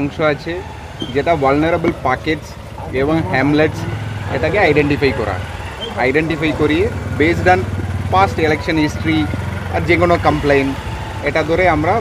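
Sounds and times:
engine idling hum: 0.0 - 12.0
man speaking: 1.2 - 10.7.

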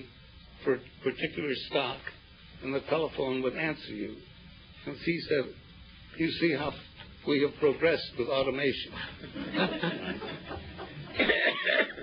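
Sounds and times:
people laughing: 9.0 - 12.0.

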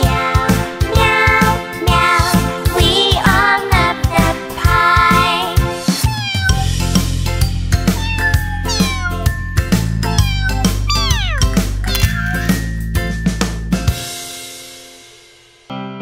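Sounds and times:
instrumental children's music: 0.0 - 15.4
cartoon kitten meowing: 6.0 - 6.7, 7.9 - 9.4, 10.0 - 12.6.

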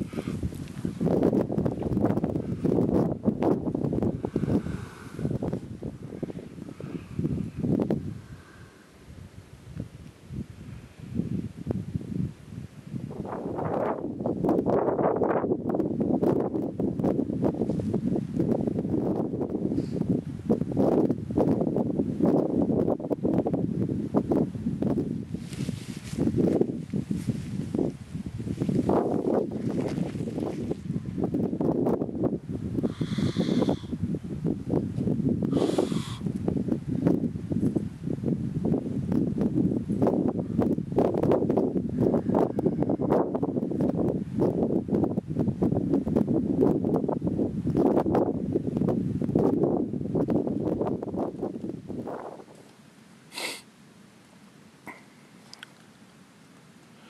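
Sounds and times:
wind buffeting microphone: 0.0 - 52.7.

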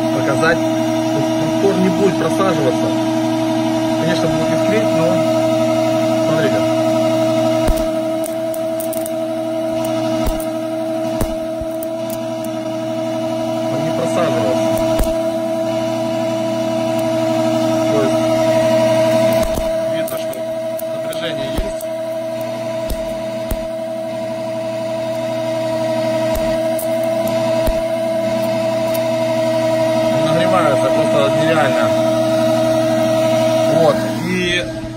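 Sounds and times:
electric motor humming: 0.0 - 34.9
sharp electrical clicks: 7.6 - 12.6, 14.6 - 15.3, 19.1 - 23.8, 26.2 - 29.1.

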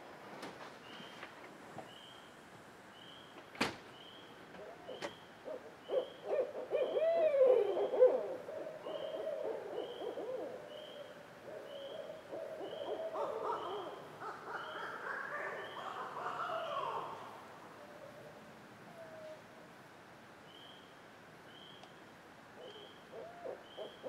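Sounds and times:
owls hooting and cackling: 4.6 - 17.2, 22.6 - 24.0.

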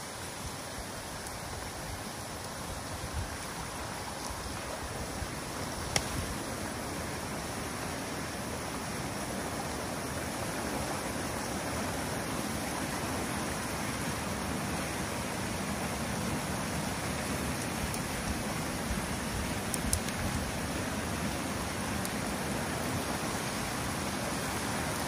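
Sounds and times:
water rushing: 0.0 - 25.0.

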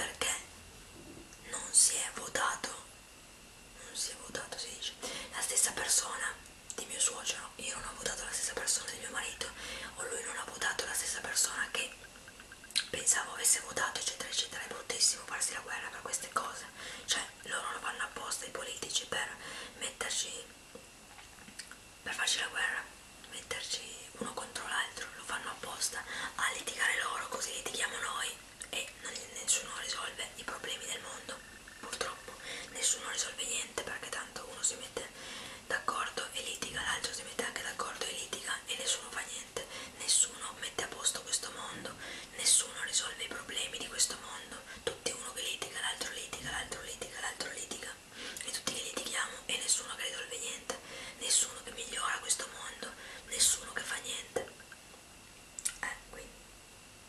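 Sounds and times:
woman whispering: 0.0 - 0.5, 1.4 - 3.0, 3.8 - 12.1, 12.8 - 20.6, 22.0 - 54.6, 55.7 - 56.4.

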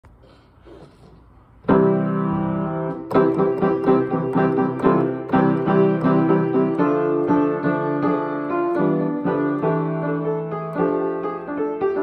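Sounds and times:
piano chord ringing: 1.7 - 12.0.

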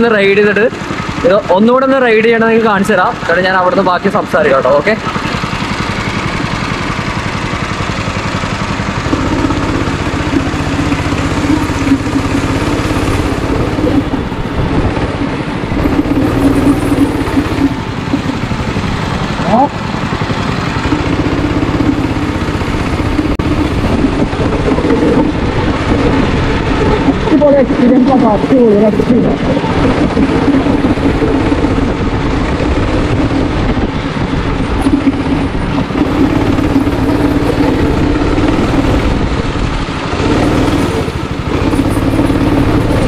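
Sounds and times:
go-kart engine revving: 0.0 - 43.0.

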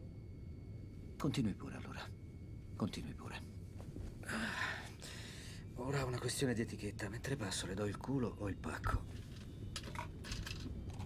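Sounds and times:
airliner cabin hum: 0.0 - 11.0
briefcase clicks and rustles: 9.2 - 11.0.

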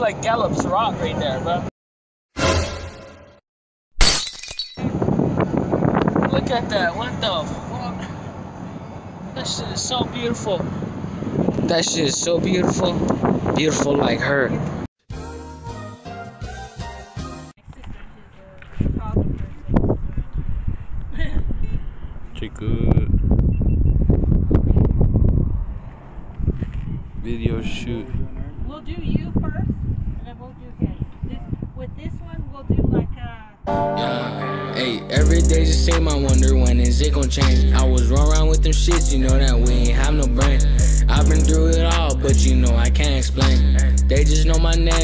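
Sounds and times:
glass shattering: 4.0 - 4.9
wind buffeting microphone: 4.8 - 7.7, 10.0 - 14.7, 17.6 - 33.6.

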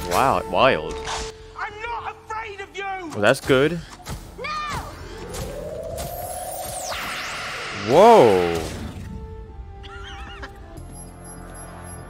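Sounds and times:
low rumbling musical score: 7.7 - 12.0.

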